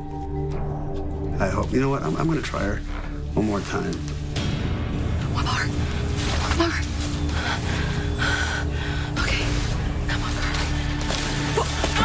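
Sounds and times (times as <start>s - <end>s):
background music with low note: 0.0s - 12.0s.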